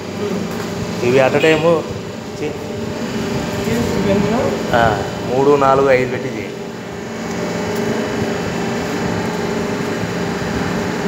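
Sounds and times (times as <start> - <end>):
machine humming: 0.0 - 11.0.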